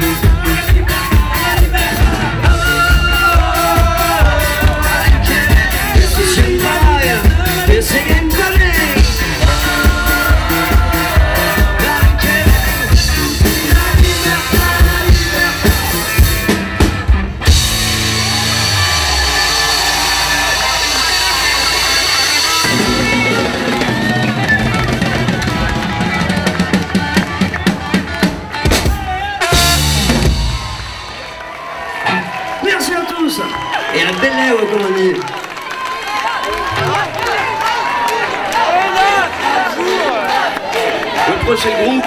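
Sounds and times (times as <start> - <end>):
live band playing: 0.0 - 39.6.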